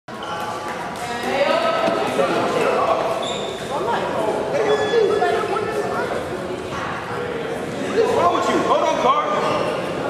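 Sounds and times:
people talking indistinctly: 0.2 - 10.0.

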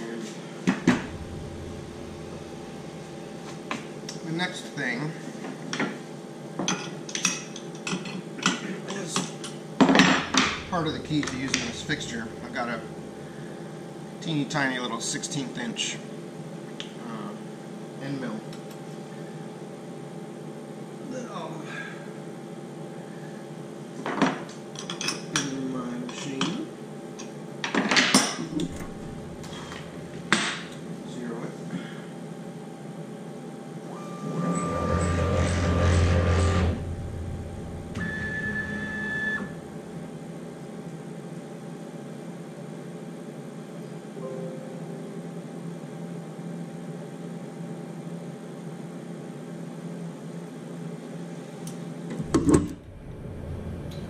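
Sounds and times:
steady machine hum: 0.0 - 24.0, 28.3 - 54.0
machine motor whining: 0.8 - 3.4, 10.2 - 13.7, 28.5 - 30.7, 33.8 - 40.0.

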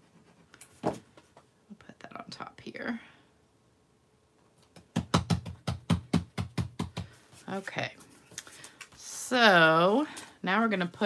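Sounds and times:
hands patting cardstock: 4.6 - 7.4.

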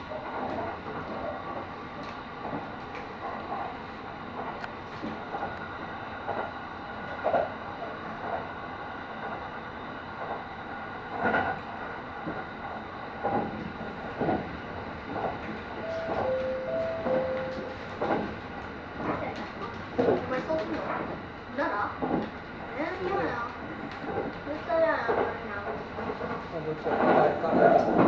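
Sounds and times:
train running noise: 0.0 - 28.0
two-note tone: 15.8 - 17.8.

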